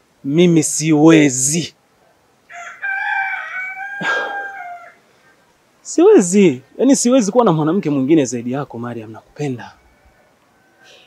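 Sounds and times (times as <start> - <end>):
rooster crowing: 2.5 - 5.1, 9.7 - 11.0.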